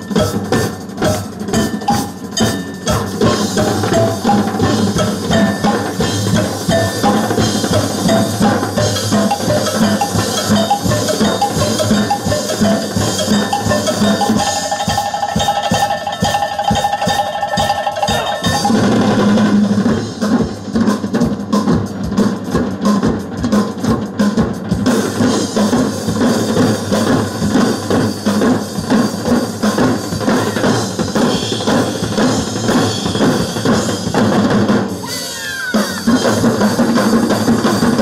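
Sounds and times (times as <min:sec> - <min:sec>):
percussion ensemble drumming: 0:00.0 - 0:38.0.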